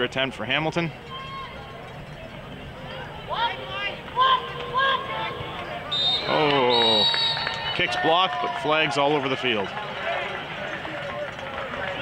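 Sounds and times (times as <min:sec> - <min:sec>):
people shouting high-pitched: 0:02.9 - 0:07.8.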